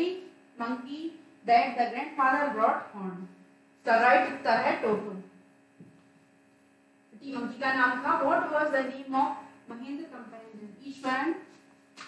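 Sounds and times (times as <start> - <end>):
woman's voice: 0.0 - 5.3, 7.2 - 11.6
faint electrical hum: 0.0 - 12.0.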